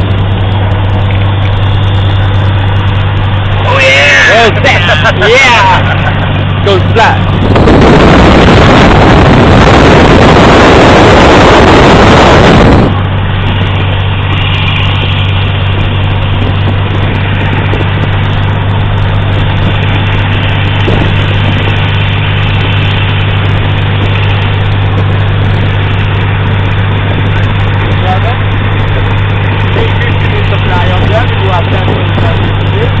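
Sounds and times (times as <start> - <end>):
light aircraft engine and propeller: 0.0 - 8.1
noisy air rush: 0.0 - 33.0.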